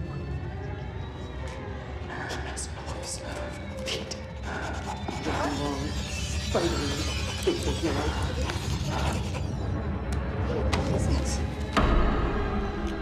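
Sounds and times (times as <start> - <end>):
ominous low drone: 0.0 - 13.0.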